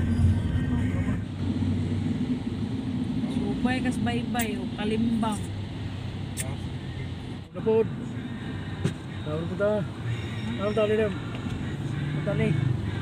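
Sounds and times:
vehicle engine drone and road noise: 0:00.0 - 0:13.0.

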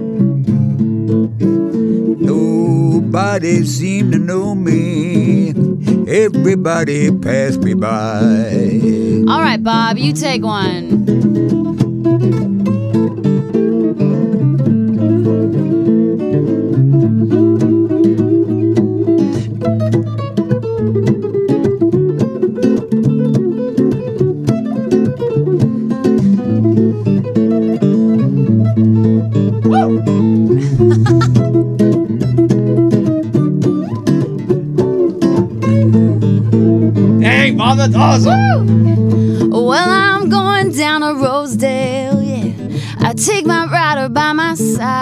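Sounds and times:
electric guitar blues solo: 0:00.0 - 0:45.0
rhythm electric guitar: 0:00.0 - 0:45.0.

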